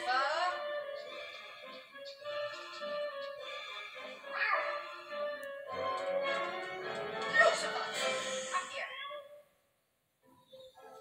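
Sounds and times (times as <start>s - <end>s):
film score through tv speaker: 0.0s - 11.0s.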